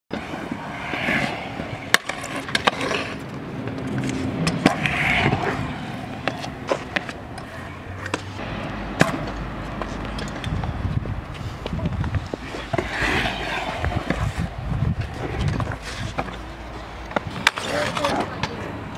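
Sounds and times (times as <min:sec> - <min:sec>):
scooter wheels rolling on concrete: 0:00.1 - 0:18.9
scooter clacking on concrete: 0:06.2 - 0:08.4, 0:17.0 - 0:18.7.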